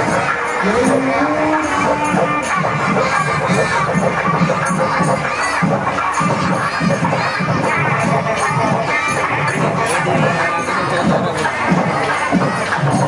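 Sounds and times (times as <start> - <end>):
crowd shouting and cheering: 0.0 - 13.0
music with a regular beat: 0.0 - 13.0.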